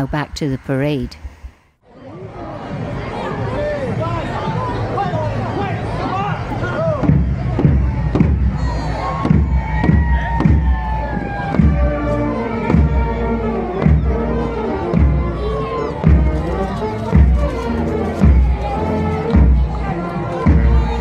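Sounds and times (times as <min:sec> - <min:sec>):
crowd chatter: 0:01.8 - 0:21.0
bass drum beat: 0:06.8 - 0:21.0
brass band playing a march: 0:08.6 - 0:21.0.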